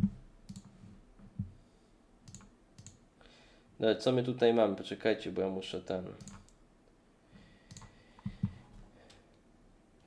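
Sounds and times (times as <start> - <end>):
faint sharp clicks: 2.2 - 3.0, 7.7 - 8.3.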